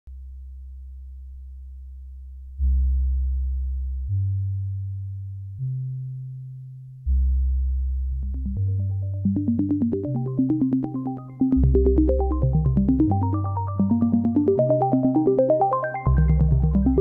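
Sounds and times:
synthesizer bass notes: 0:07.1 - 0:17.0.

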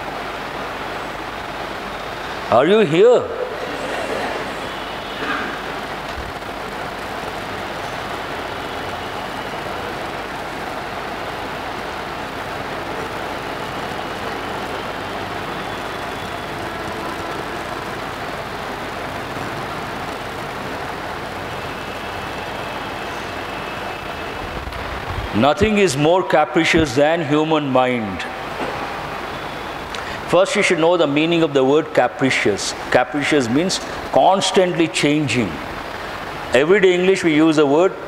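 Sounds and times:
room hiss and rumble: 0:00.0 - 0:38.0.

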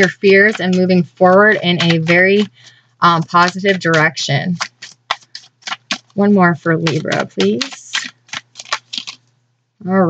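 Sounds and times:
cards being shuffled by hand: 0:00.0 - 0:09.4.

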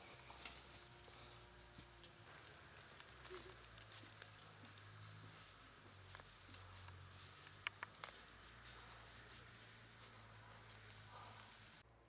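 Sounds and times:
footsteps on leafy dirt path: 0:00.0 - 0:11.8
faint steady hum: 0:00.0 - 0:12.0.

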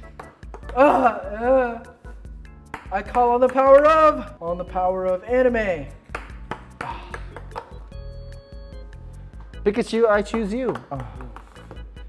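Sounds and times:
background music: 0:00.0 - 0:12.0
ping pong ball bouncing on table: 0:06.1 - 0:07.8, 0:10.3 - 0:11.6.

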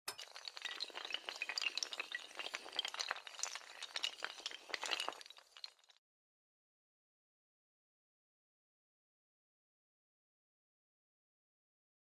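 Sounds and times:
dominoes toppling and clattering: 0:00.2 - 0:06.0.

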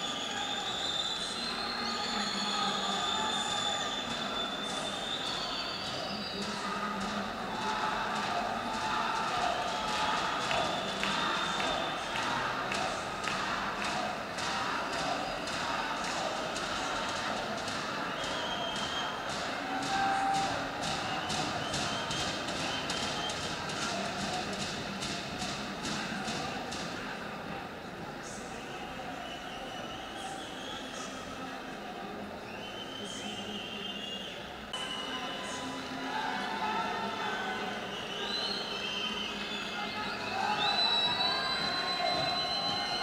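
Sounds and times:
murmur of crowd voices: 0:00.0 - 0:43.0.

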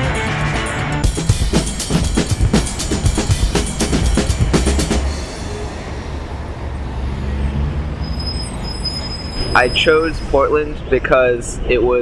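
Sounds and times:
city street traffic rumble: 0:00.1 - 0:12.0.

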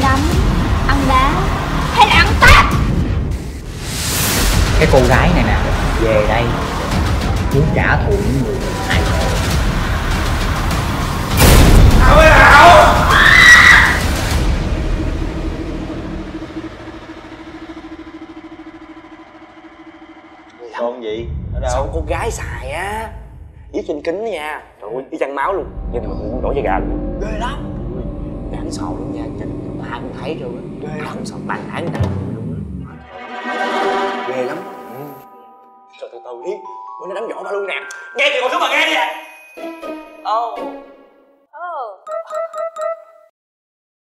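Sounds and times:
low fluttering drone: 0:00.0 - 0:03.8, 0:14.3 - 0:22.2, 0:25.6 - 0:33.1
loud cinematic boom: 0:00.0 - 0:23.8, 0:25.6 - 0:33.1
sustained music chord: 0:14.4 - 0:20.8, 0:25.6 - 0:38.9.

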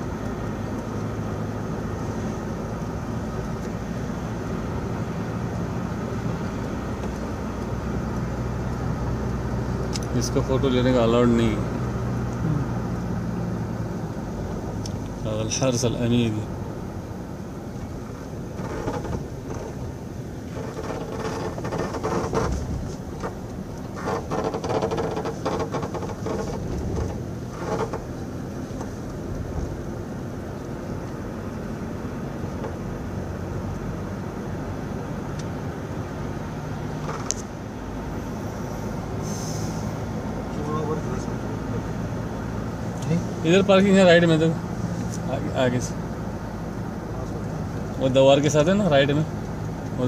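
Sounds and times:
car engine and road hum: 0:00.0 - 0:50.0.

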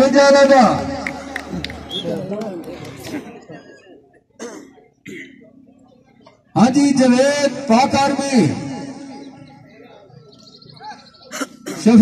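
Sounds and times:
person clearing throat: 0:03.5 - 0:05.5, 0:11.3 - 0:11.9.

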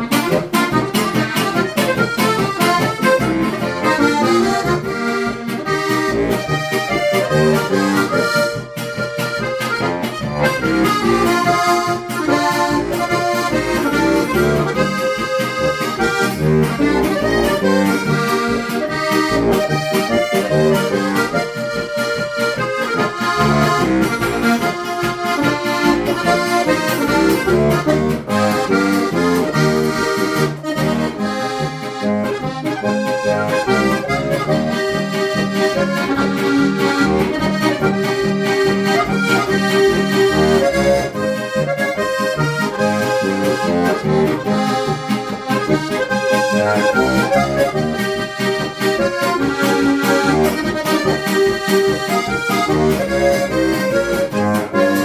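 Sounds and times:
button accordion folk tune: 0:00.0 - 0:55.0.

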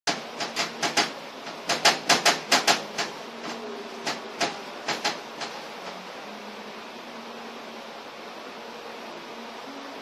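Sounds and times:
faint steady hum: 0:00.1 - 0:10.0.

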